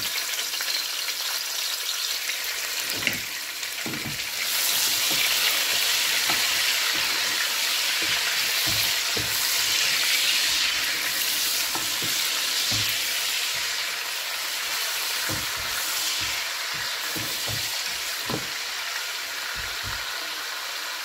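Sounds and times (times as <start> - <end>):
onions sizzling in hot oil: 0.0 - 21.0
wooden spatula knocking on pot: 3.8 - 4.3, 5.0 - 13.8, 15.2 - 18.6, 19.6 - 20.1.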